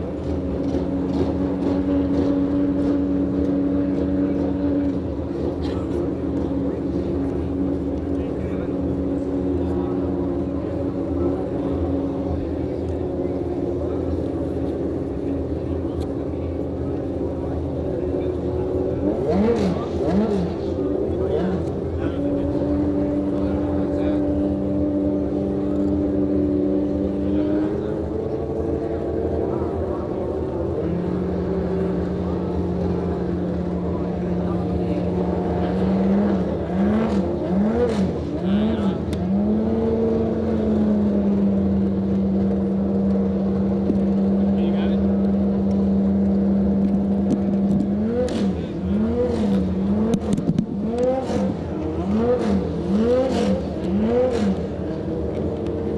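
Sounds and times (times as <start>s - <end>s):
engine throttle blips: 0.0s - 55.9s
race car engines idling: 0.0s - 55.9s.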